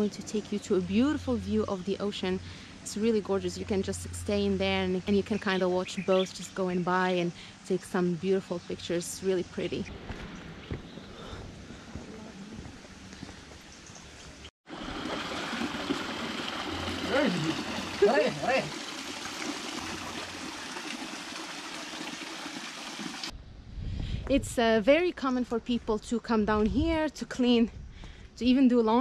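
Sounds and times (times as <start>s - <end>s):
water running over rocks: 14.7s - 23.3s.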